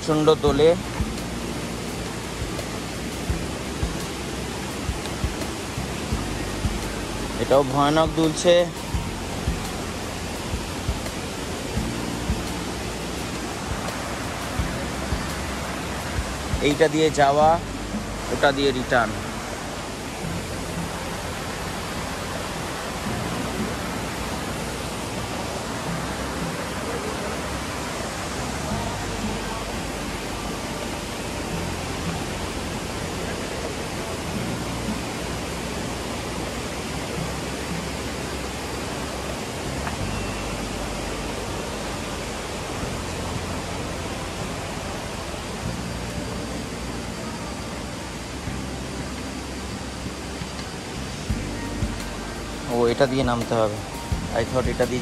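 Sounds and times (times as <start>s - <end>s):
mountain stream rushing: 0.0s - 55.0s.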